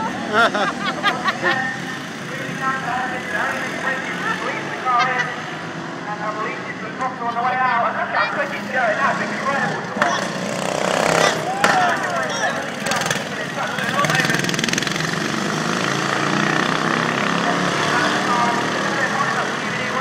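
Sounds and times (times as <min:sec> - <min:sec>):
crowd voices: 0:00.0 - 0:20.0
ride-on lawn mower engines: 0:00.0 - 0:20.0.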